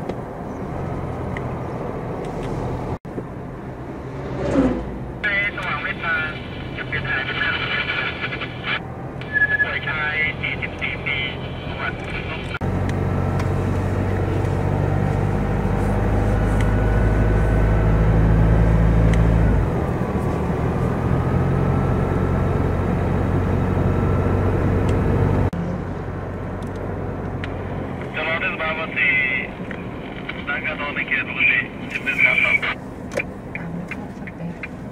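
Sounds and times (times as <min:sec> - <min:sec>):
car engine hum and road noise: 0:00.0 - 0:34.9
person speaking: 0:30.4 - 0:32.8.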